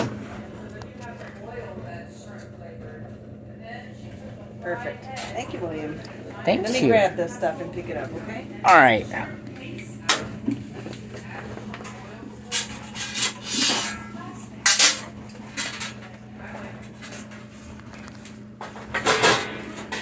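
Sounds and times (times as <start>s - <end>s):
washing machine humming: 0.0s - 20.0s.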